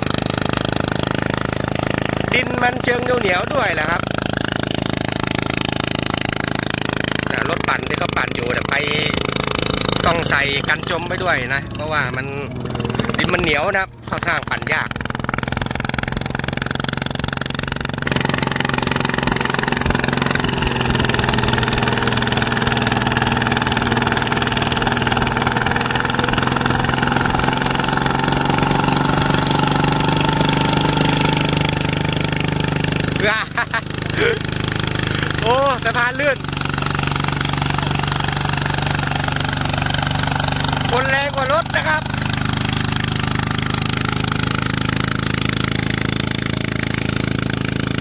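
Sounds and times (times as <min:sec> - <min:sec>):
diesel tractor engine running: 0:00.0 - 0:48.0
person speaking: 0:33.2 - 0:34.5, 0:35.1 - 0:36.4, 0:40.8 - 0:42.1.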